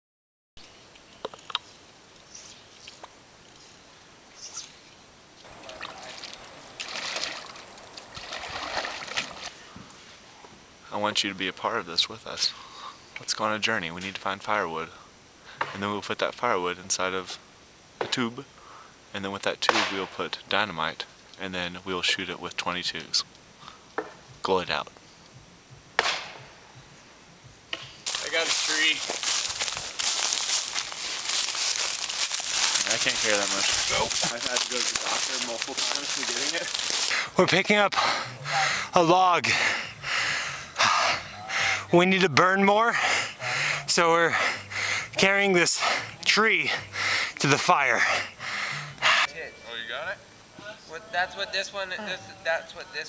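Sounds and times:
water splashing and trickling: 5.4s - 9.6s, 28.1s - 37.2s
sharp crack: 19.7s - 20.1s, 26.0s - 26.4s.

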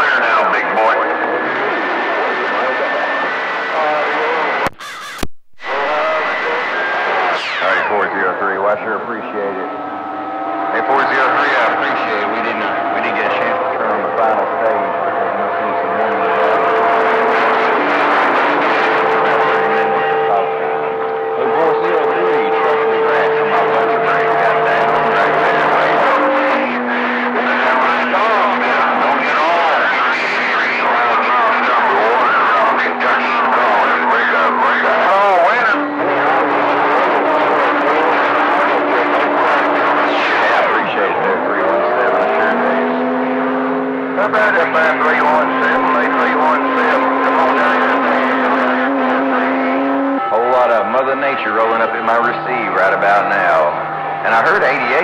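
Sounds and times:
garbled radio voices: 0.0s - 55.0s
radio static: 0.0s - 55.0s
whistling radio tones: 0.0s - 55.0s.

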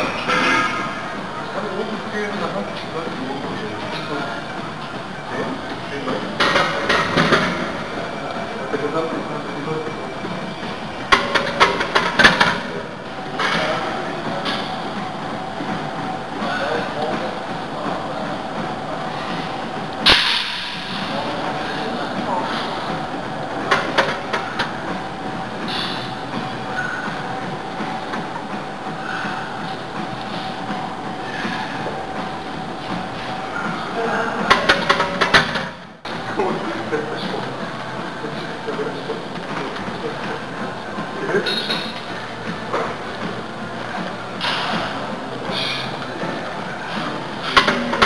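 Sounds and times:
gym background: 0.0s - 48.0s
steady rushing noise: 0.0s - 48.0s.

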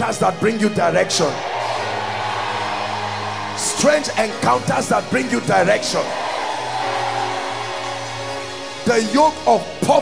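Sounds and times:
sustained music chords: 1.5s - 9.8s.

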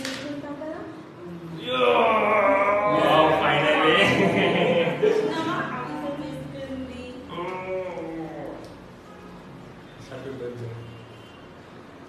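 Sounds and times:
person making drawn-out vocal sounds: 1.3s - 4.0s.

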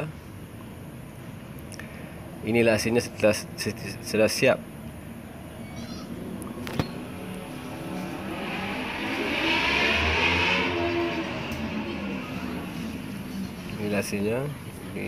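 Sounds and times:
road vehicle passing by: 2.2s - 15.0s.

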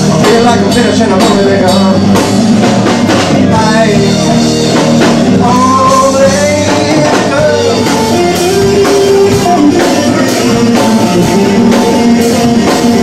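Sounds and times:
bass guitar: 0.0s - 13.0s
drum kit beat: 0.0s - 13.0s.

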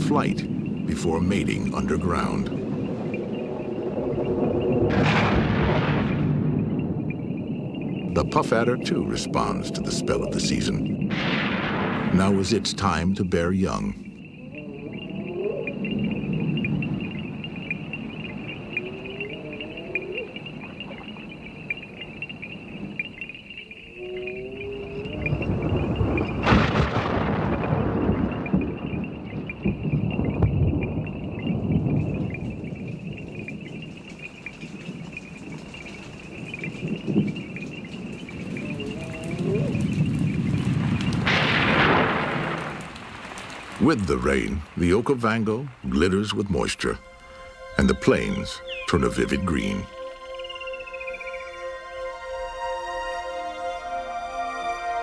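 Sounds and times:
thunder claps rolling: 0.0s - 19.3s, 24.8s - 47.2s
high trilling chorus: 46.8s - 55.0s.

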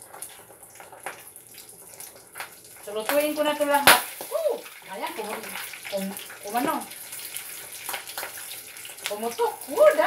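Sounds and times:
pans sizzling: 0.0s - 10.0s.

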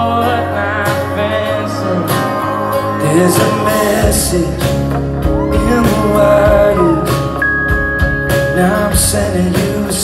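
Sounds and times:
acoustic guitar chords: 0.0s - 10.0s
electric guitar chords: 0.0s - 10.0s.

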